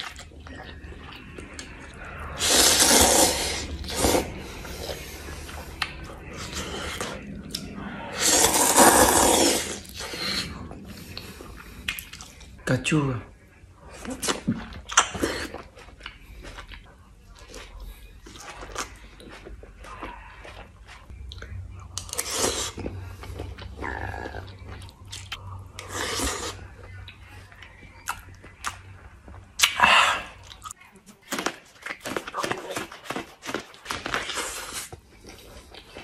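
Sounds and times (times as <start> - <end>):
person chewing food: 0.0 - 12.6, 13.9 - 36.0
person slurping noodles: 2.1 - 7.2, 8.1 - 11.2.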